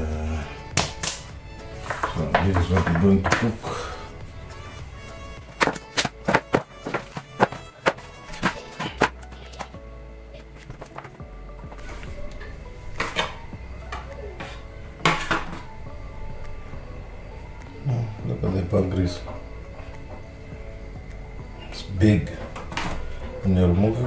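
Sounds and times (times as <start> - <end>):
quiet background music: 0.0 - 24.0.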